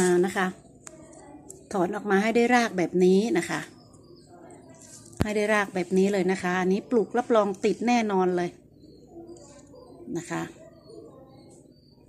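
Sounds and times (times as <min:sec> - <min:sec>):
woman speaking: 0:00.0 - 0:00.6, 0:01.7 - 0:08.6, 0:09.9 - 0:10.8.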